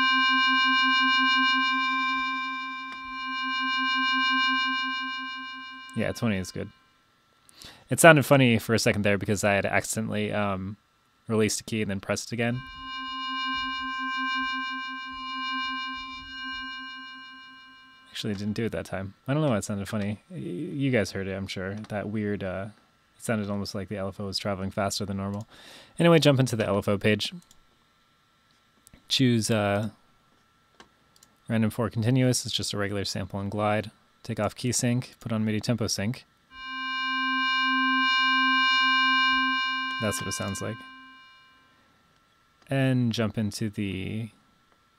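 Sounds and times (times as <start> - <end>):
synth tone with pulsing flutter: 0.0 - 6.8, 12.4 - 18.6, 36.6 - 41.6.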